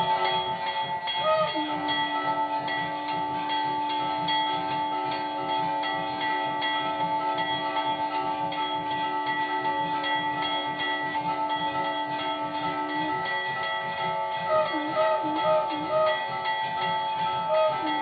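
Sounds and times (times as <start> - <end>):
long held note: 0.0 - 18.0
rhythmic low pulse: 0.0 - 18.0
temple bell ringing: 0.0 - 18.0.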